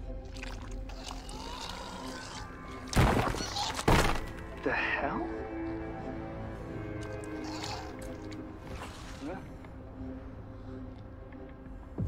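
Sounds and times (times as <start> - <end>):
low music underscore: 0.0 - 12.0.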